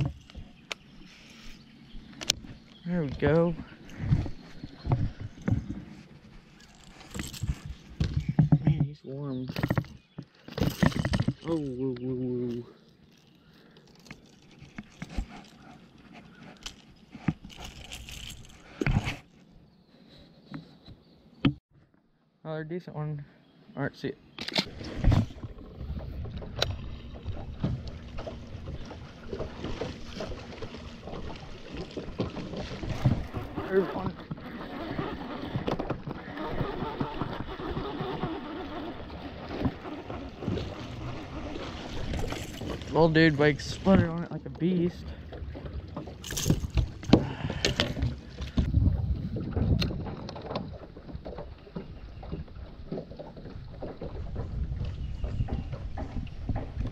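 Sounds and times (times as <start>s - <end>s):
water around a boat: 0.0s - 56.9s
wind on microphone: 46.5s - 50.4s, 54.1s - 56.9s.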